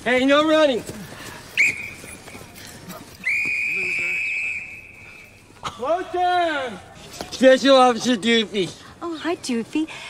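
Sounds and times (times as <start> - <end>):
whistle long blast: 3.2 - 5.4.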